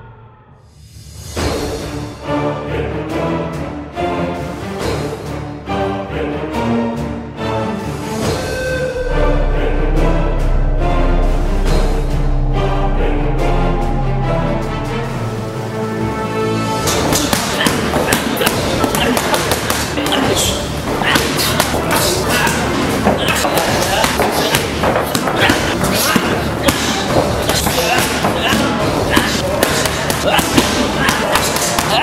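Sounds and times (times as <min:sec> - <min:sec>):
music: 0:00.0 - 0:32.0
punches and kicks on pads: 0:17.1 - 0:32.0.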